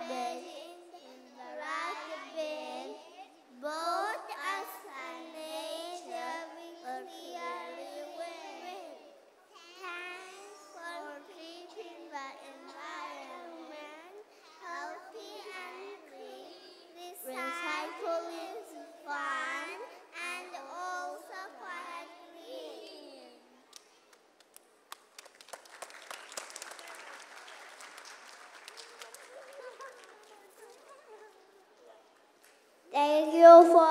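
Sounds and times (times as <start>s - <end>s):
young children singing: 0.0s - 23.6s, 33.0s - 33.9s
audience applauding: 24.4s - 32.5s.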